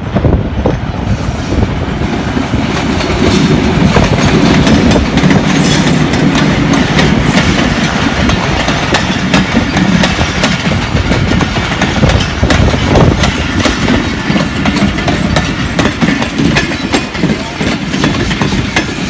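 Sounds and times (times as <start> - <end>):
train wheels rumbling on rail: 0.0 - 19.0
wheels clicking over rail joints: 2.9 - 19.0.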